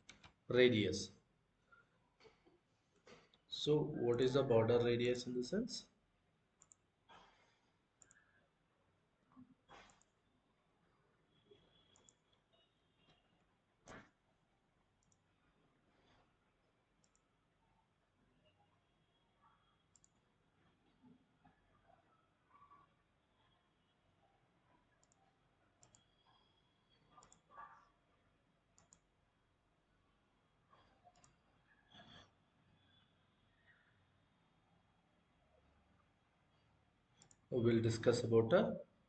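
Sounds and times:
computer mouse clicks: 0.0s - 0.4s, 6.6s - 7.2s, 8.0s - 8.4s, 9.7s - 10.2s, 11.7s - 12.4s, 13.8s - 14.2s, 15.0s - 15.3s, 17.0s - 17.3s, 19.8s - 20.3s, 24.9s - 25.2s, 25.8s - 27.9s, 28.7s - 29.1s, 30.8s - 33.1s, 37.2s - 37.5s
faint computer mouse clicks: 6.6s - 6.8s, 8.0s - 8.2s, 19.9s - 20.2s, 25.0s - 25.2s, 25.8s - 26.4s, 27.2s - 27.5s, 28.8s - 29.1s, 37.2s - 37.4s.

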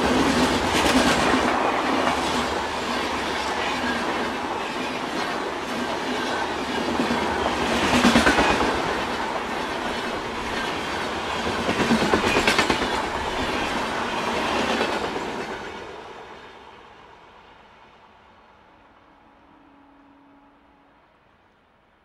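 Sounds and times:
train wheels clattering on rails: 0.0s - 16.2s.

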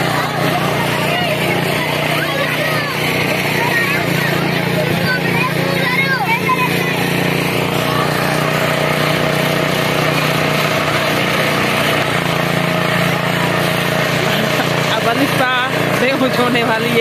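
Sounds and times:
people's voices: 0.0s - 17.0s
small engine humming: 0.0s - 17.0s.

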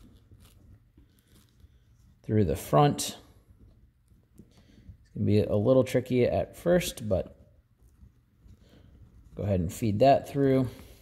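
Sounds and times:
bungee cord rustling and ticking: 0.0s - 11.0s.

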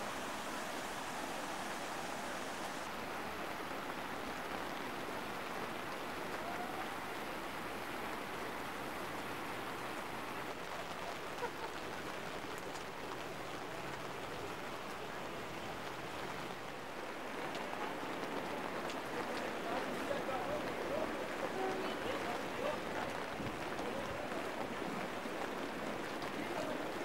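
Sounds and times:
rain falling on ground and water: 0.0s - 27.0s
river rushing: 0.0s - 27.0s.

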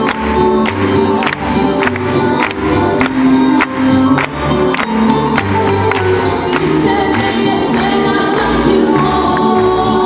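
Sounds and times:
double bass: 0.0s - 10.0s
guitars: 0.0s - 10.0s
women singing together: 6.5s - 10.0s.

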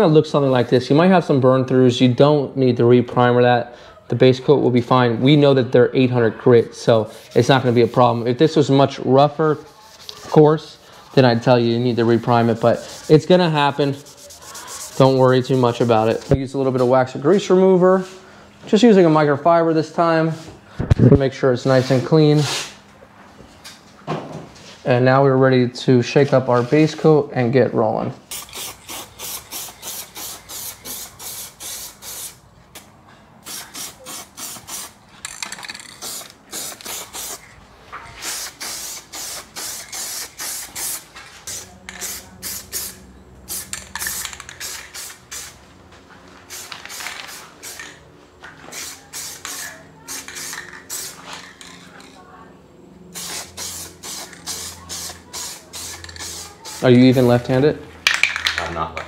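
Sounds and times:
spray can hissing bursts: 10.9s - 16.4s, 28.2s - 32.4s, 33.4s - 37.5s, 38.2s - 45.6s, 46.5s - 48.0s, 48.7s - 51.5s, 53.1s - 57.5s.

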